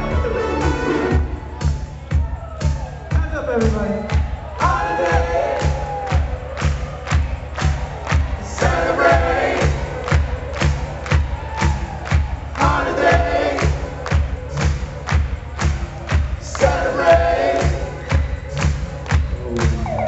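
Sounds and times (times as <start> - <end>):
live band playing dance-pop: 0.0 - 4.8
kick drum beat: 0.0 - 20.0
crowd singing along: 4.6 - 5.8, 8.4 - 10.4, 12.6 - 14.2, 16.4 - 18.2.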